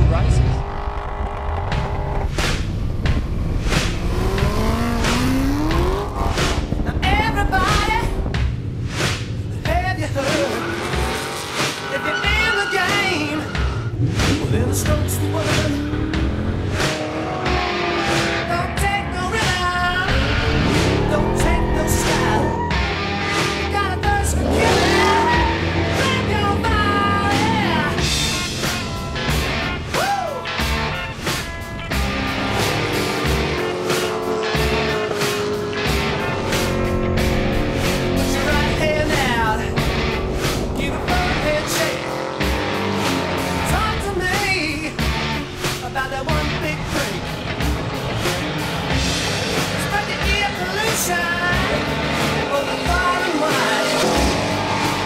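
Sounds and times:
car engines revving: 0:00.0 - 0:55.0
rock music: 0:00.0 - 0:55.0
tyres squealing: 0:10.4 - 0:13.9, 0:24.1 - 0:28.0.

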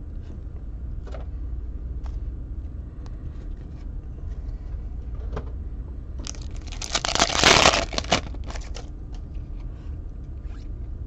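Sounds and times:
foil crinkling: 0:06.2 - 0:08.8
foil pack tearing: 0:06.2 - 0:08.8.

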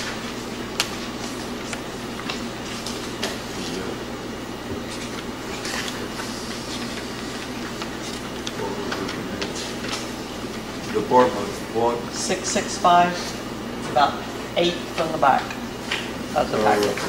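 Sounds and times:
room noise: 0:00.0 - 0:17.0
paper rustling and crackling: 0:04.8 - 0:11.3.

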